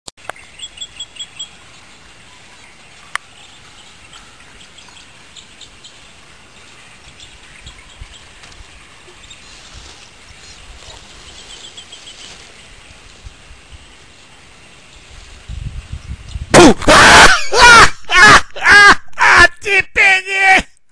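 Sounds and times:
small bird chirping: 0.2s - 16.5s
faint outdoor hiss: 0.2s - 16.6s.

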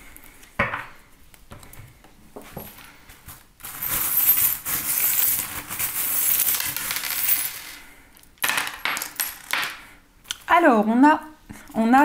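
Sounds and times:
charms clinking on table: 3.6s - 9.8s
metal charms jingling: 3.7s - 7.8s.

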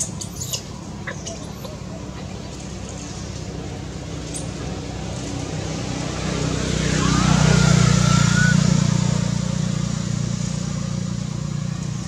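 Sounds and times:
passing vehicle engine drone: 0.0s - 12.0s
high wavering squeal: 6.7s - 9.3s.

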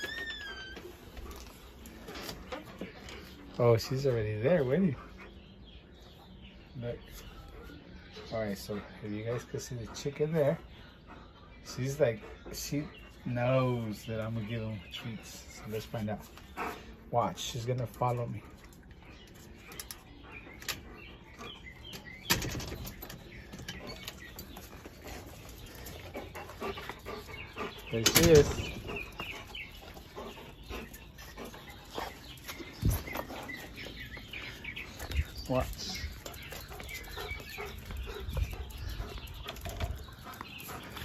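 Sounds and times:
metal screen door clicks: 22.0s - 23.9s, 28.0s - 28.7s
footsteps on concrete: 28.7s - 41.0s.

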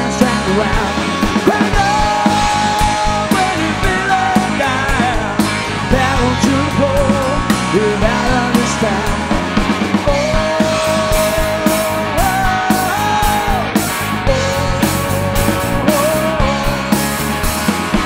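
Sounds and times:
bass and drums: 0.0s - 18.0s
electric guitar lead with bent notes: 0.0s - 18.0s.

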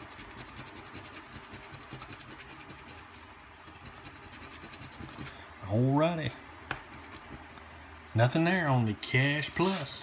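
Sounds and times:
coin scratching lottery ticket: 0.0s - 5.3s.

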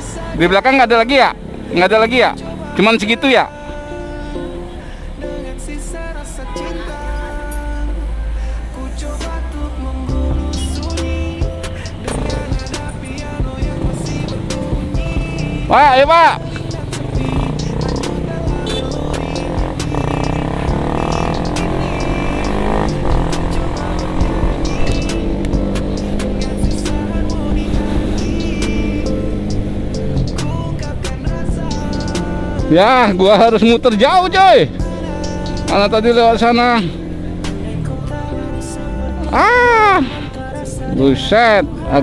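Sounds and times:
background music: 0.0s - 42.0s
motorcycle engine pulling away: 12.0s - 15.7s, 16.4s - 33.8s
wavering voice-like note: 39.3s - 40.2s.

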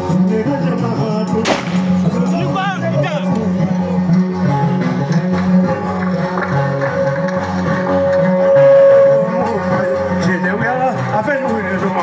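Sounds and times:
long steady note: 7.7s - 10.9s.

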